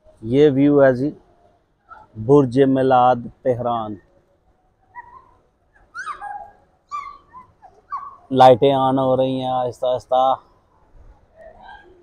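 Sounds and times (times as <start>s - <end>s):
birds chirping: 4.8s - 9.0s.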